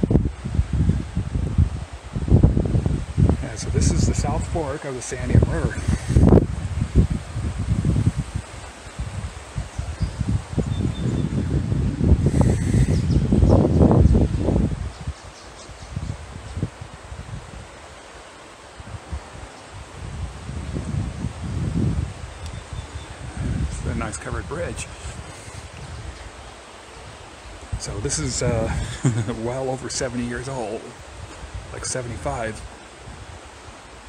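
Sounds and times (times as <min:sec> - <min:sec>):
wind gusting on microphone: 0:00.0 - 0:34.0.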